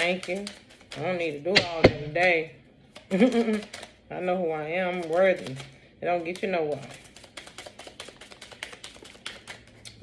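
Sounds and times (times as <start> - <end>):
cards being shuffled: 0.0 - 1.3, 2.9 - 4.0, 4.8 - 5.7, 6.3 - 9.8.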